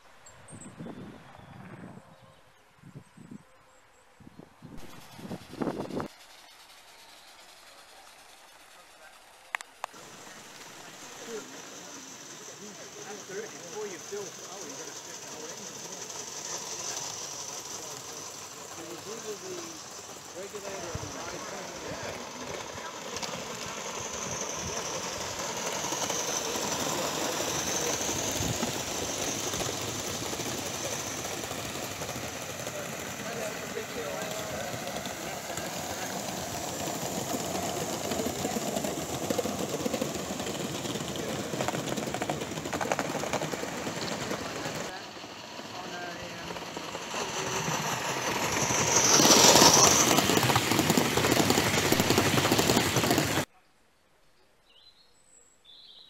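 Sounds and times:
model train wheels clattering on rails: 6.0s - 53.5s.

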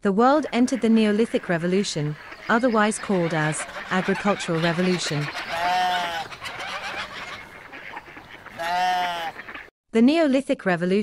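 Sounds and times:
poultry clucking: 0.3s - 9.7s
animal bleating: 5.1s - 7.5s, 8.4s - 9.5s.

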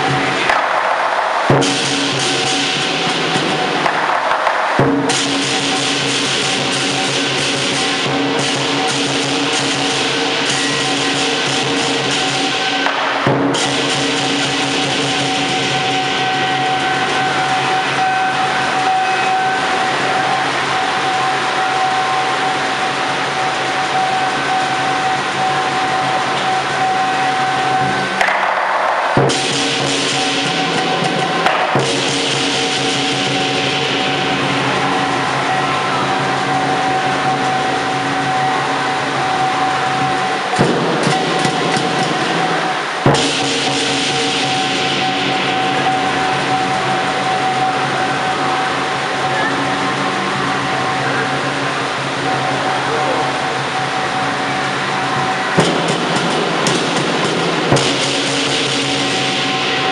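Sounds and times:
crashing cymbals: 0.0s - 59.9s
large drum beating: 0.0s - 59.9s.

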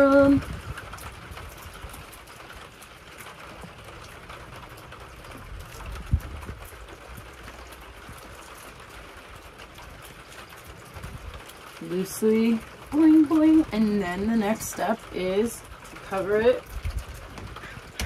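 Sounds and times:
light rain patter: 0.0s - 18.0s.

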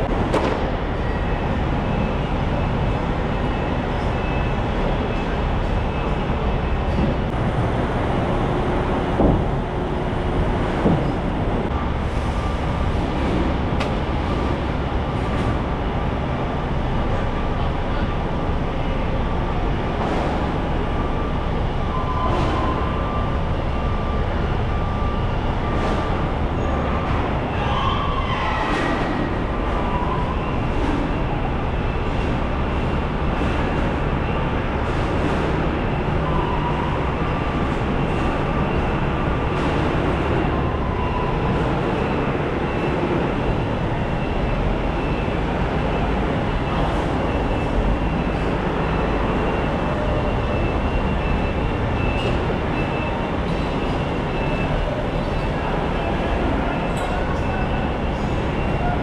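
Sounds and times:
machinery drone: 0.0s - 59.0s.

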